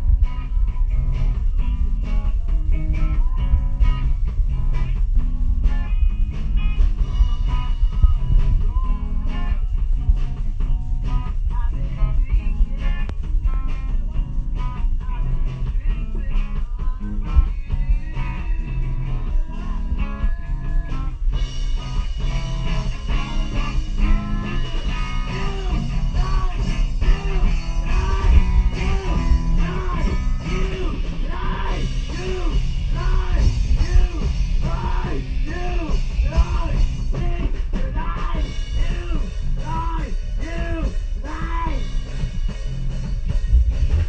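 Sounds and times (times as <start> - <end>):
quick guitar riff: 0.0 - 44.0
rock band playing live: 0.0 - 44.0.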